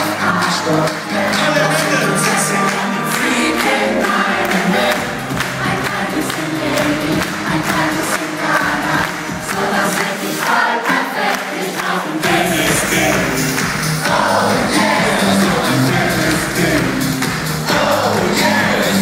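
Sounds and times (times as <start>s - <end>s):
crowd singing and cheering: 0.0s - 19.0s
live concert music: 0.0s - 19.0s.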